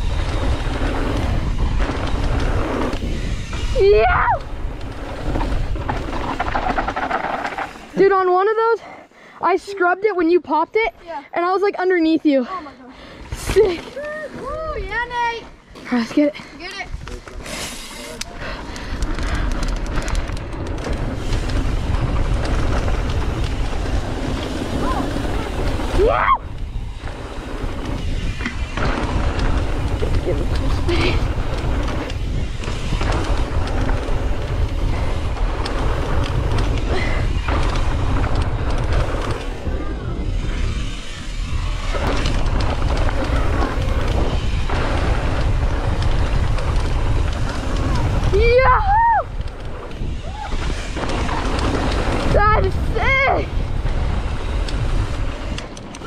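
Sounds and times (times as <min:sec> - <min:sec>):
bike tyres rolling over dirt: 0:00.0 - 0:08.8, 0:09.5 - 0:56.0
wind buffeting microphone: 0:00.0 - 0:08.9, 0:18.2 - 0:56.0.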